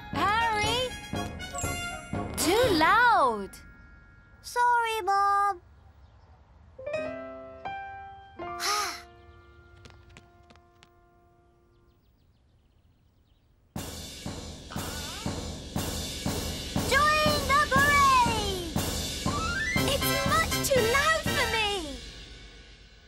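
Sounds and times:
music playing: 0:00.0 - 0:04.1, 0:14.0 - 0:22.3
downcast musical cue: 0:13.8 - 0:23.0.

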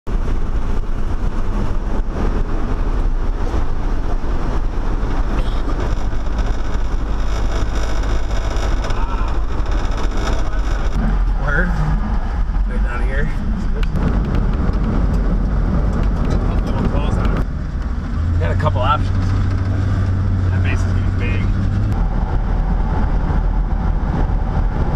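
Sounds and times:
vehicle engine hum: 0:00.0 - 0:24.9
tyre and wind noise: 0:00.1 - 0:24.9
faint voices: 0:08.6 - 0:11.8.

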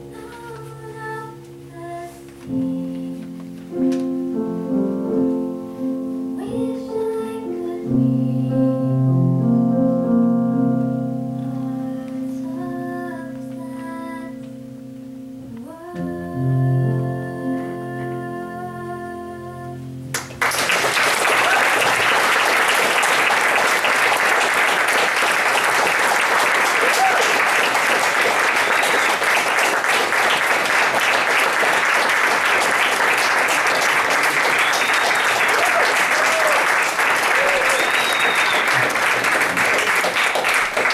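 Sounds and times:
piano chord: 0:00.0 - 0:37.3
audience applauding: 0:20.1 - 0:40.9.

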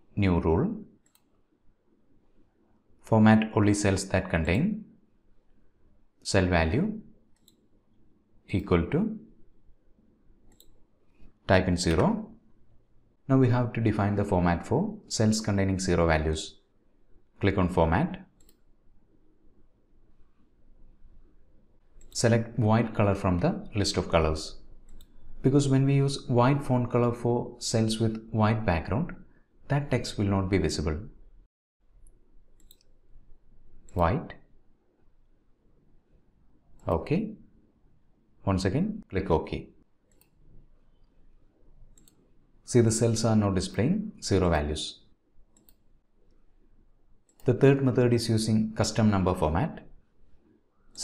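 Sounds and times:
computer mouse click: 0:01.0 - 0:01.4, 0:07.3 - 0:07.7, 0:10.5 - 0:12.0, 0:18.4 - 0:18.7, 0:22.0 - 0:22.2, 0:24.8 - 0:25.4, 0:32.0 - 0:33.0, 0:40.1 - 0:41.2, 0:41.9 - 0:42.4, 0:45.5 - 0:46.4, 0:47.2 - 0:47.5.

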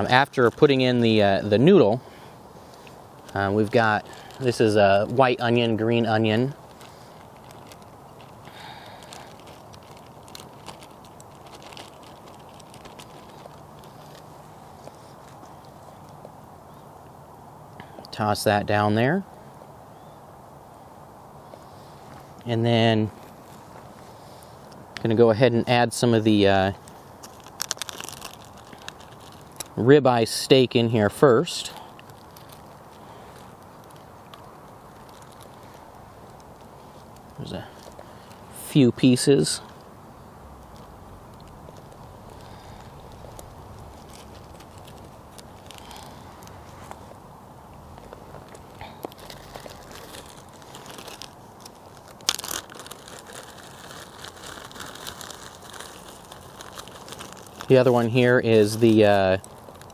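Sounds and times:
plastic bag crinkling: 0:00.0 - 0:16.3, 0:23.1 - 0:59.9
steady low hiss: 0:00.0 - 0:59.9.

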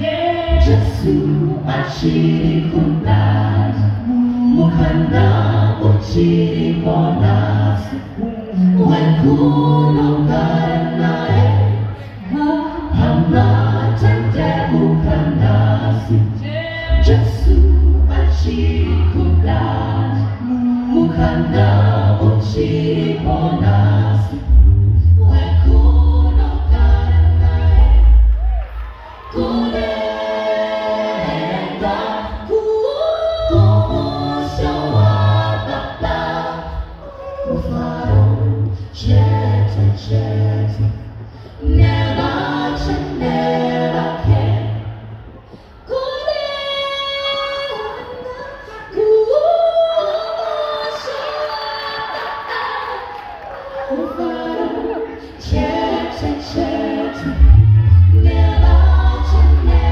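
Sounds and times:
a cappella group singing in harmony: 0:00.0 - 0:59.9
bass voice holding low notes: 0:57.3 - 0:59.9.

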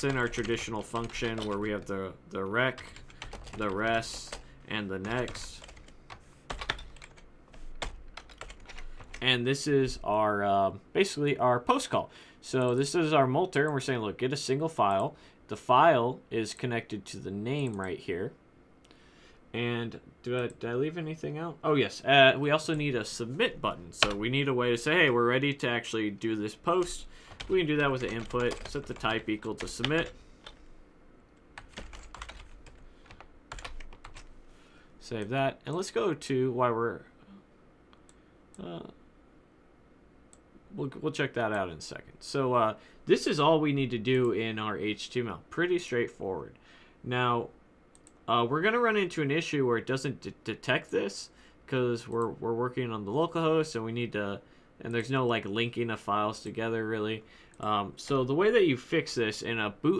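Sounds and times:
typing on computer keyboard: 0:00.0 - 0:01.9, 0:02.8 - 0:04.4, 0:05.0 - 0:05.9, 0:06.5 - 0:07.2, 0:07.8 - 0:09.2, 0:27.3 - 0:30.6, 0:31.6 - 0:34.3.

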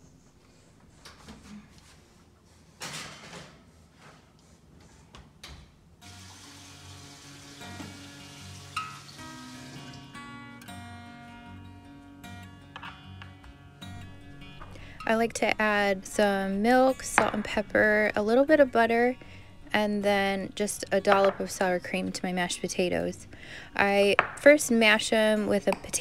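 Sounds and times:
soft acoustic guitar music: 0:06.0 - 0:24.2.

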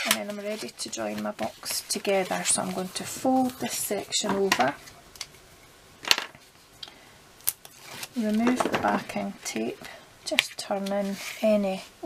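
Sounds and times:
paper rustling and tapping: 0:00.0 - 0:04.9, 0:07.9 - 0:09.7.

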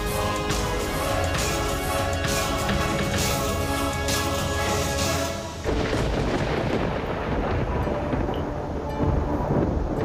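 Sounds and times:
faint music tones: 0:00.0 - 0:10.0
thunder-like rumble: 0:02.5 - 0:10.0.

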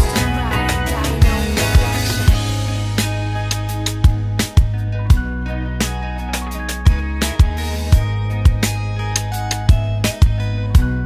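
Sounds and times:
hip hop beat kick and snare: 0:00.0 - 0:05.2, 0:06.9 - 0:11.0
live guitar: 0:00.0 - 0:11.0.

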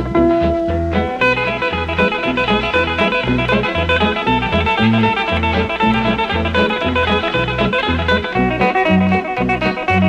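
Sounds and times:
bass line: 0:00.0 - 0:10.0
picked guitar lead: 0:00.0 - 0:10.0.

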